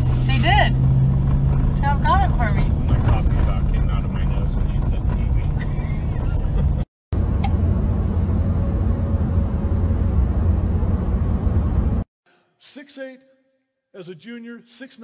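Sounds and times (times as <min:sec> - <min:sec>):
car engine and road noise: 0:00.0 - 0:12.1.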